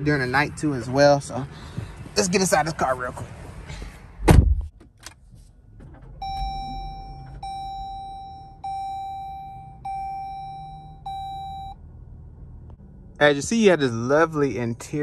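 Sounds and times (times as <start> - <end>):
heavy thump: 4.2 - 4.7
dashboard warning chime: 6.2 - 11.8.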